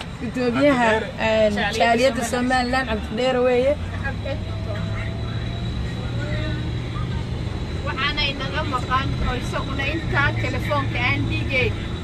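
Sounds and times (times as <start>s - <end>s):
road noise: 0.0s - 12.0s
vehicle engine rumble: 0.0s - 12.0s.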